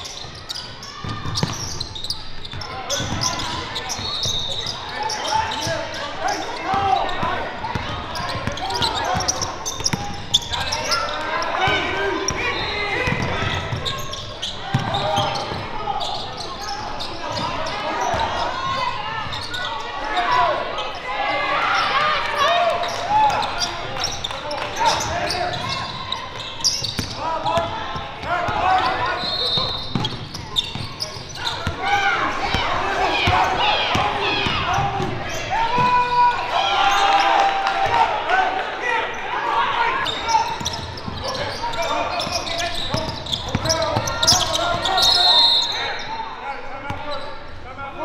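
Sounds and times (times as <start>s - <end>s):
shoe squeaks: 0.0s - 11.8s, 12.4s - 21.0s, 21.6s - 27.2s, 28.6s - 31.8s, 40.0s - 46.2s
people shouting: 31.4s - 40.5s.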